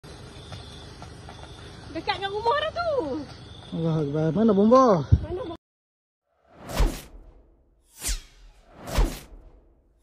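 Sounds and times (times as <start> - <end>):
whoosh sound effect: 6.5 - 9.8.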